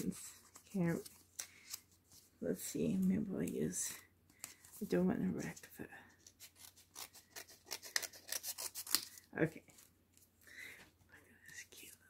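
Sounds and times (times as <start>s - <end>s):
scissors snipping paper: 6.3s - 9.2s.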